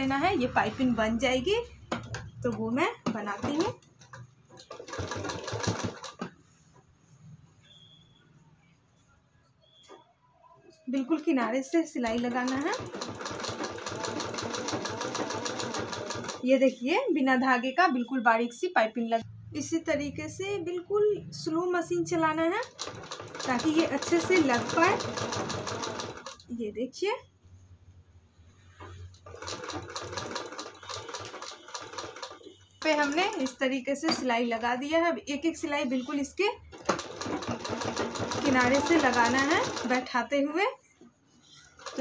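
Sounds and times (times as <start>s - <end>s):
sewing machine stitching: 1.9s - 6.4s, 12.1s - 16.4s, 22.4s - 26.5s, 28.8s - 34.7s, 36.7s - 40.1s, 41.6s - 42.0s.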